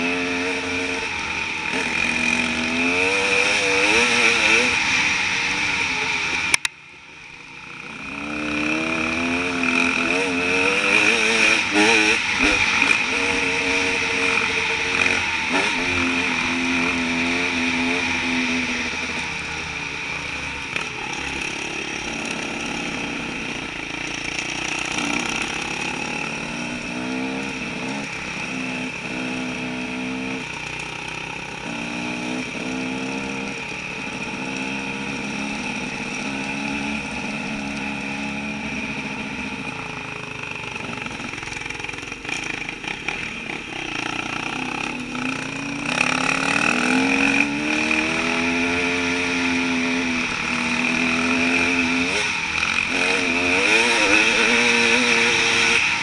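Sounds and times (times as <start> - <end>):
dirt bike engine revving: 0.0 - 6.7, 7.3 - 56.0.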